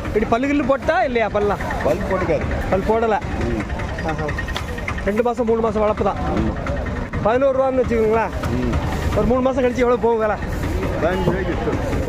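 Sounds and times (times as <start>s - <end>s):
vehicle engine idling: 0.0s - 12.0s
voices talking: 0.0s - 12.0s.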